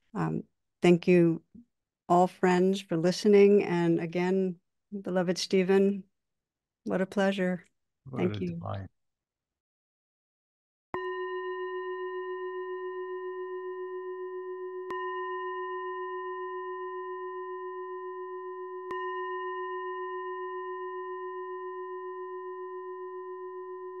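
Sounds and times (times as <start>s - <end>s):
meditation bell ringing: 11.0s - 24.0s.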